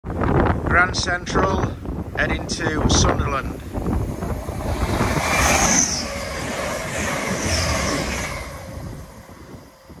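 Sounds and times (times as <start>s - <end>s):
diesel train passing: 1.8s - 10.0s.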